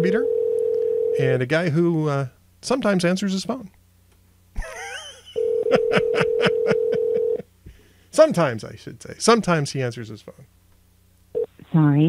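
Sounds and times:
telephone ringback tone: 0.0s - 1.2s, 5.4s - 7.4s
man laughing: 4.6s - 7.4s.

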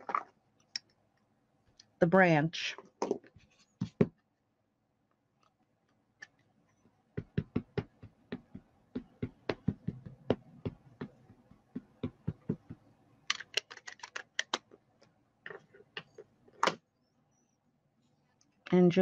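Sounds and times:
rubber stamp tapping ink pad: 7.2s - 14.6s.

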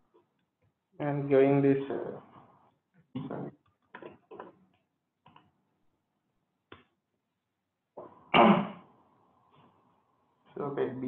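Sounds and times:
man coughing: 8.4s - 8.8s.

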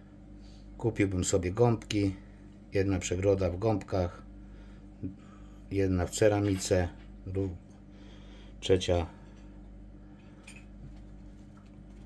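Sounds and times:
aquarium equipment hum: 0.0s - 12.0s.

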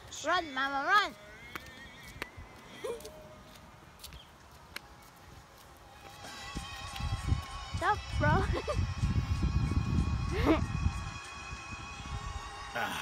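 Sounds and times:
footsteps on asphalt: 0.0s - 8.6s
faint background music: 0.0s - 13.0s.

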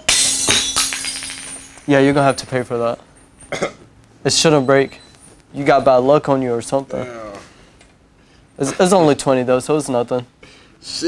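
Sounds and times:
glass shattering on floor: 0.0s - 2.5s
glass shards tinkling: 0.0s - 3.5s.

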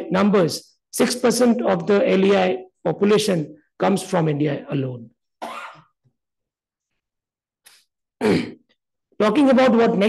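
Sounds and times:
person clearing throat: 5.4s - 6.0s, 8.2s - 8.8s.

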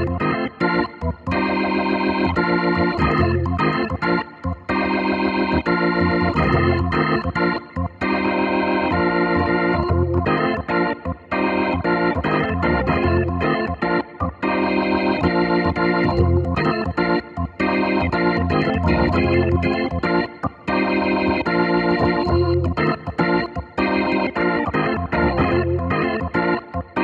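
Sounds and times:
electric organ chords: 0.0s - 27.0s.

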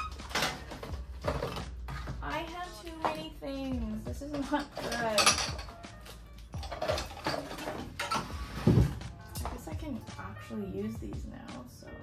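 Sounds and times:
items knocking and clinking: 0.0s - 9.7s
background music: 0.0s - 12.0s.

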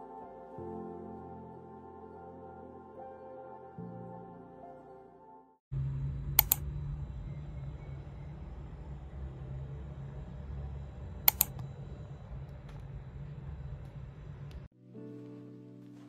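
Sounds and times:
low room hum: 5.7s - 14.7s
sharp double click: 6.4s - 6.7s, 11.3s - 11.6s.

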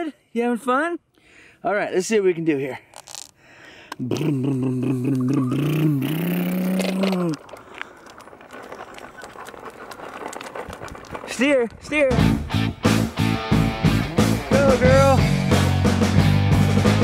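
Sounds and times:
plastic wheels rolling on pavement: 2.9s - 3.3s, 5.3s - 13.1s
person holding long vocal sound: 4.0s - 7.4s.

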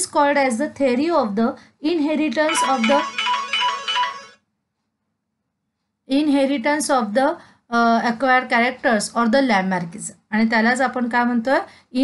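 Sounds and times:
phone ringtone melody: 2.4s - 4.4s.

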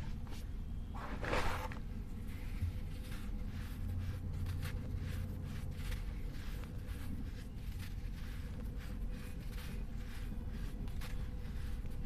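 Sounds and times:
steady low hum: 0.0s - 12.0s
gritty scratches and rustles: 1.0s - 12.0s.

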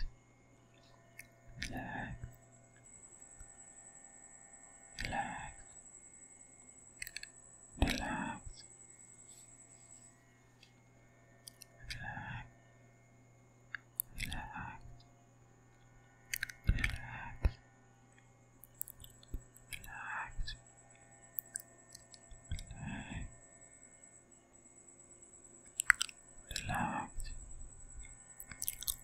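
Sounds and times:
breathy whispering: 1.5s - 2.4s, 4.9s - 5.8s, 7.8s - 9.5s, 11.5s - 12.6s, 14.0s - 15.0s, 16.4s - 17.6s, 18.8s - 20.6s, 21.4s - 23.4s, 25.7s - 27.6s, 28.4s - 29.0s
wet mouth clicks: 7.0s - 8.3s, 11.5s - 12.2s, 13.7s - 14.5s, 16.3s - 17.1s, 18.6s - 20.6s, 21.4s - 22.9s, 25.7s - 27.3s, 28.4s - 29.0s.

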